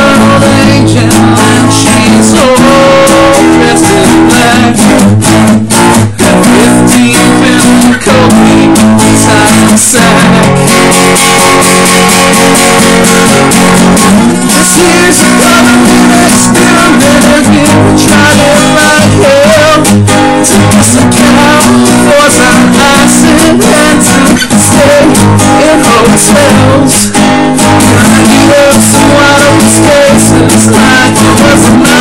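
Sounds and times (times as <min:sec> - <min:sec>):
acoustic guitar strumming: 0:00.0 - 0:32.0
man singing: 0:00.0 - 0:32.0.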